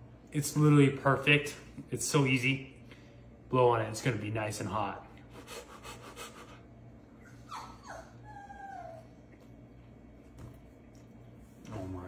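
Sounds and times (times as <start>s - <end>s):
dog whimpering: 7.1s - 9.3s.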